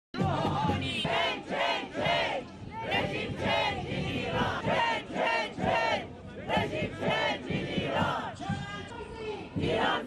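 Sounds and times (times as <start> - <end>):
crowd chanting: 0.2 - 8.4, 9.6 - 10.0.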